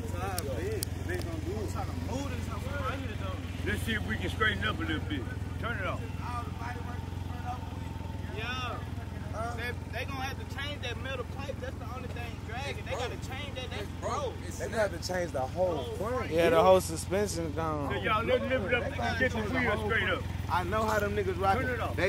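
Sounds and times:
motorcycle idling: 0.0 - 22.0
people talking: 0.0 - 22.0.

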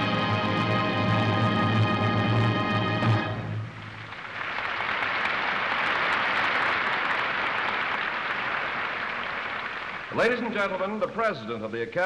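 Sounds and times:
audience applauding: 3.8 - 11.0.

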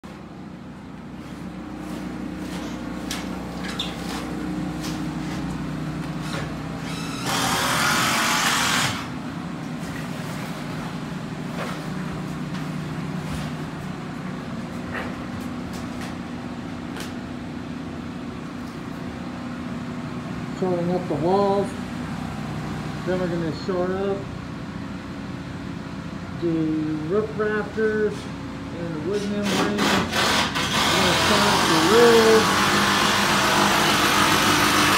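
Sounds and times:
low motor hum: 0.0 - 29.3.

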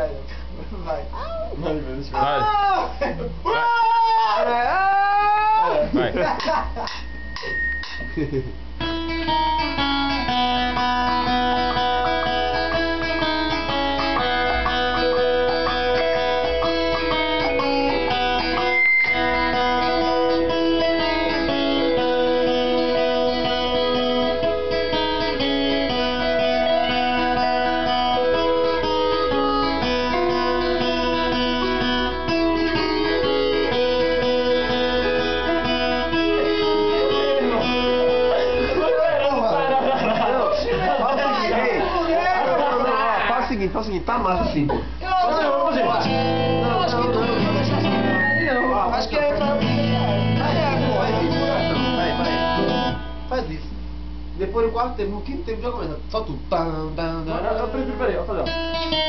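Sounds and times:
plucked guitar melody: 6.0 - 43.2, 44.4 - 53.5, 58.4 - 59.0.

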